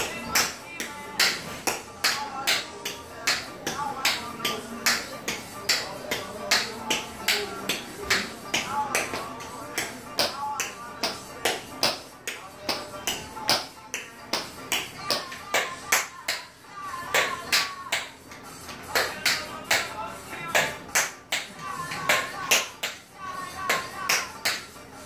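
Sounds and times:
tap shoes on tile floor: 0.0 - 16.5, 17.1 - 23.0, 23.6 - 24.7
song with vocals: 0.0 - 25.0.

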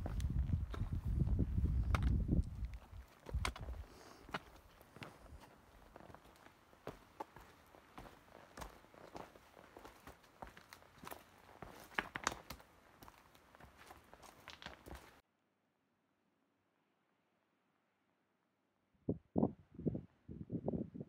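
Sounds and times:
boot footsteps on rock and gravel: 0.0 - 15.2.

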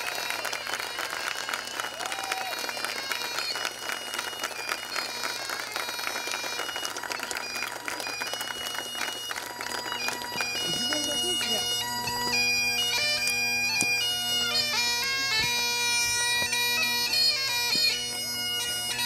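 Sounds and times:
crowd applauding: 0.0 - 19.0
music with held notes: 2.6 - 19.0.

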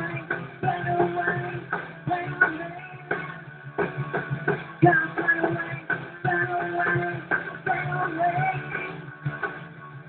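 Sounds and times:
electric guitar melody: 0.0 - 10.0
live rock band playing: 0.0 - 10.0.

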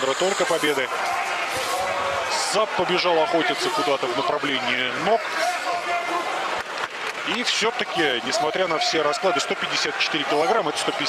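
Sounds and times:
arena crowd noise: 0.0 - 11.0
television fight commentary: 0.0 - 11.0.

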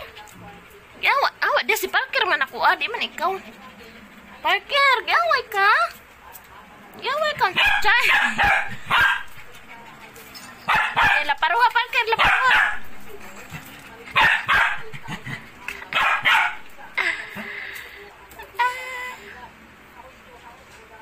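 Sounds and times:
dog barking and yipping: 7.5 - 9.4, 10.7 - 13.0, 14.1 - 14.9, 15.9 - 16.7.

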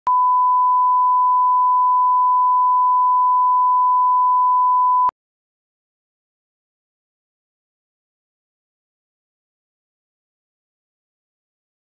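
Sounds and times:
steady test tone beep: 0.1 - 5.1.

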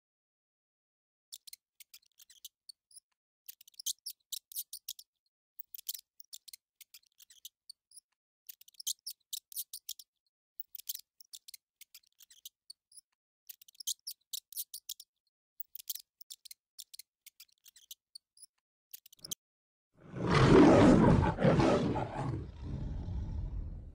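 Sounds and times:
lion roaring: 20.0 - 23.9.

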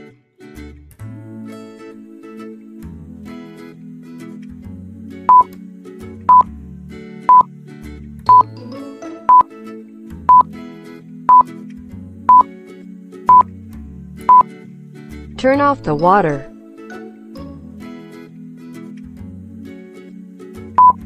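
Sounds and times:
soft background music: 1.0 - 21.0
short electronic beeps: 20.8 - 21.0.

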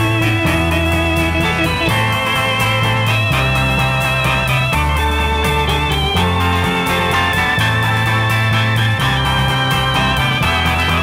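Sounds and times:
arpeggiated electric guitar: 0.0 - 11.0
bass and drums: 0.0 - 11.0
combo organ chords: 0.0 - 11.0.

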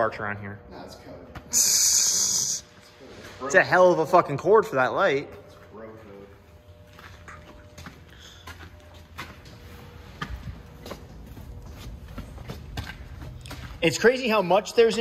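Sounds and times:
footsteps on concrete with debris: 6.6 - 15.0.

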